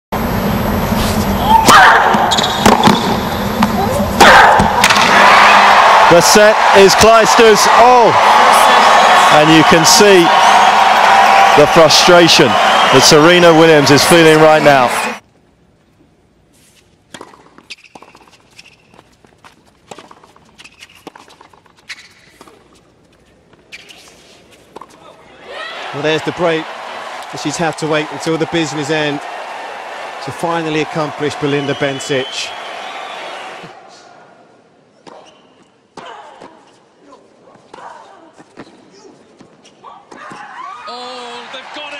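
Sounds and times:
tennis ball struck by rackets: 1.7s - 5.2s
tennis ball strikes and bounces: 2.1s - 3.8s, 17.1s - 18.7s
shoes squeaking on court: 2.3s - 3.8s, 16.6s - 25.2s, 35.0s - 36.8s, 37.5s - 40.6s
crowd cheering and applauding: 4.7s - 15.2s, 25.4s - 33.8s, 40.9s - 41.9s.

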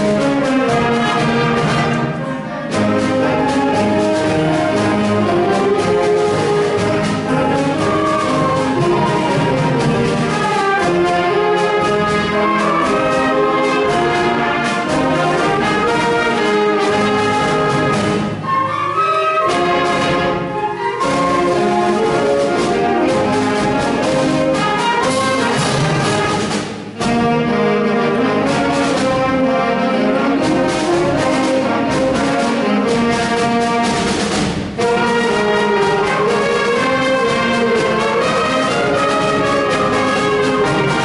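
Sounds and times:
concert band playing a march: 0.0s - 41.0s.

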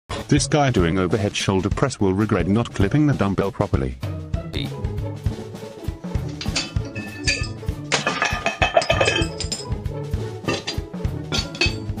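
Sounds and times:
background music with beat: 0.1s - 12.0s
weight plates crashing down: 6.3s - 9.7s, 10.5s - 11.9s.

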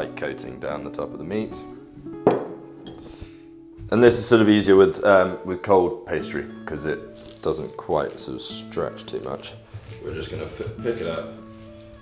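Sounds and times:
speech: 0.0s - 1.6s, 3.9s - 11.4s.

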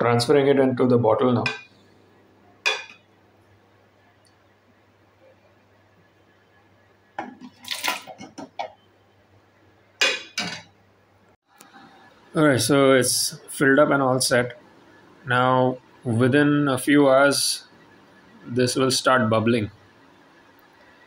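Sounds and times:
metal ladle clinking: 7.2s - 8.7s, 10.0s - 10.7s.

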